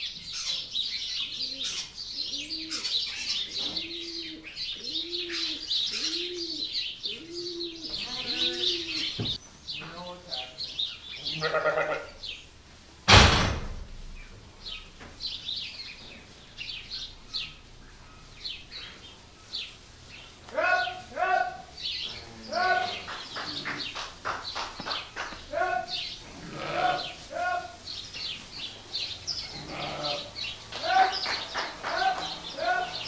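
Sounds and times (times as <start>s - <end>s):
small birds chirping: 0.0s - 12.7s, 14.1s - 33.0s
sheep bleating: 8.0s - 9.0s, 11.2s - 12.2s, 25.8s - 27.8s, 29.5s - 31.2s
loud bang: 13.1s - 14.2s.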